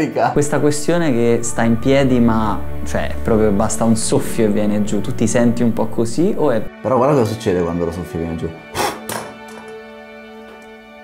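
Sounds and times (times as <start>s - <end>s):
soft background music: 0.0s - 11.0s
puff of breath: 8.7s - 9.2s.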